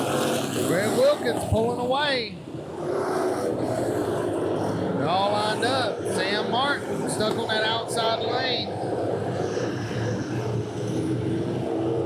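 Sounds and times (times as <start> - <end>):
race car engines: 0.0 - 12.0
person talking: 5.0 - 8.7.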